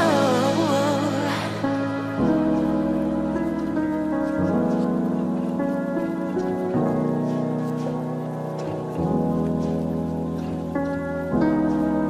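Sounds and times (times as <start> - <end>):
soul instrumental held chords: 0.0 - 12.0.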